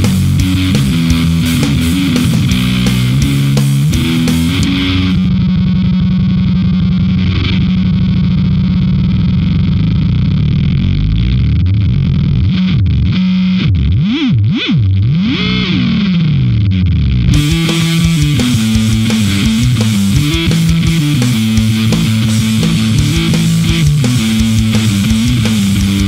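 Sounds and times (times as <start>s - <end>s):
distorted fuzz bass note: 0.0s - 26.0s.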